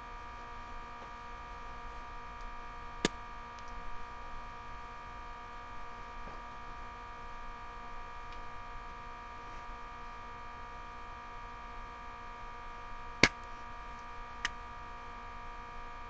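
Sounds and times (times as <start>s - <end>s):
electrical hum: 0.0s - 16.0s.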